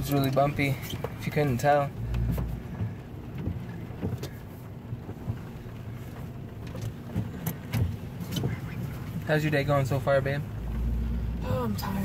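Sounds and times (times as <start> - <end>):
knocks and rattles from bumps: 0.0 - 10.9
car cabin road rumble: 0.0 - 12.0.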